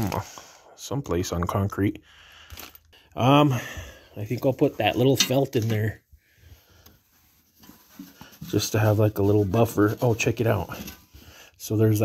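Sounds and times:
soft handling rubs: 5.6 - 11.3.

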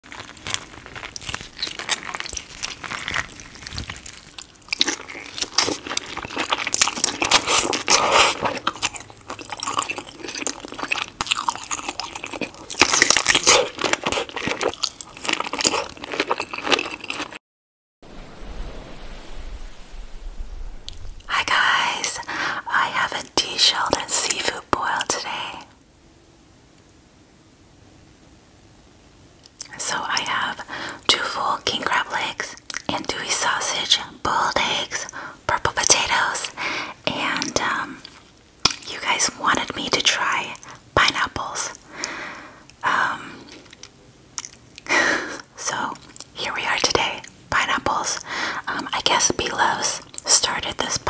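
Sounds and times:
biting and chewing food: 0.0 - 17.4, 37.4 - 38.9, 43.4 - 46.4
wet mouth smacks: 38.6 - 38.9, 43.5 - 44.9.

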